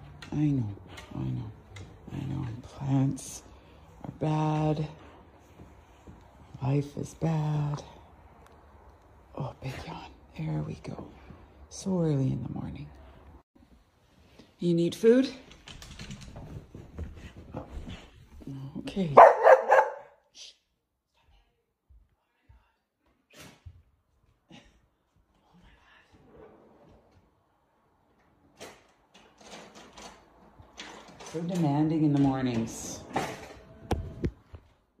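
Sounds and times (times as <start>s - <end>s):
dog barking: 19.2s - 20.2s.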